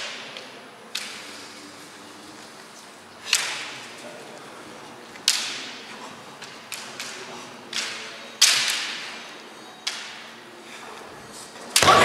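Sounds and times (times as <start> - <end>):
bamboo swords striking: 11.8 - 12.0.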